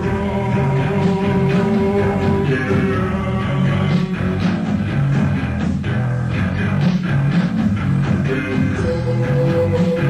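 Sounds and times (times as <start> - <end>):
bass guitar: 0.0 - 10.0
drums: 0.0 - 10.0
electric guitar: 0.0 - 10.0.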